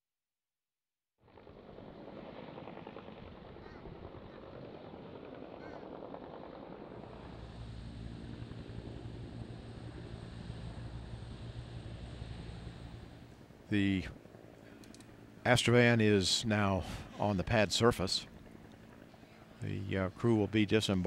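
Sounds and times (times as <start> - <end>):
thin high whine: 1.3 - 21.0
helicopter rotor and engine: 1.4 - 21.0
deep steady hum: 1.7 - 21.0.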